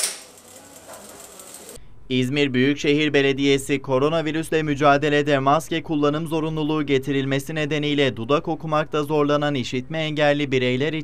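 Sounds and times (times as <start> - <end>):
sewing machine running: 0.0 - 1.8.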